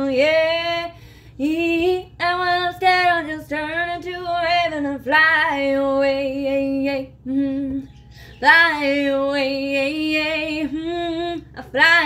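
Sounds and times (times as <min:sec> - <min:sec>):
woman singing a cappella: 0:00.0 - 0:12.0.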